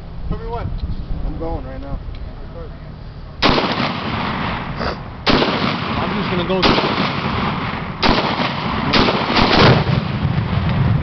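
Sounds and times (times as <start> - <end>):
exploding target blast: 3.4 - 11.0
rifle shots: 3.4 - 11.0.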